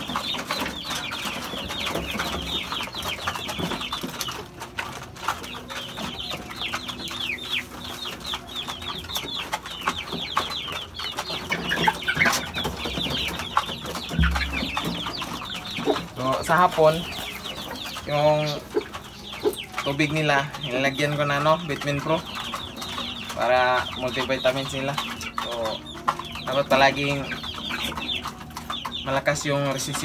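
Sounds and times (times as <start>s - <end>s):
chicken clucking: 0.0s - 30.0s
chicks peeping: 0.0s - 30.0s.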